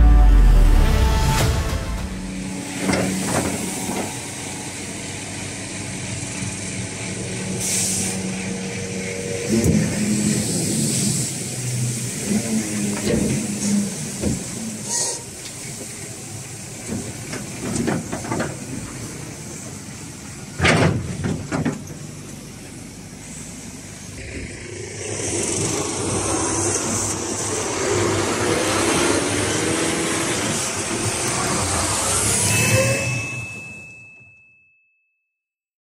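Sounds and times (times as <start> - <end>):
vehicle noise: 0.0 - 33.9
trailer body knocks and creaks: 20.6 - 22.0
high bell-like ding: 32.4 - 35.2.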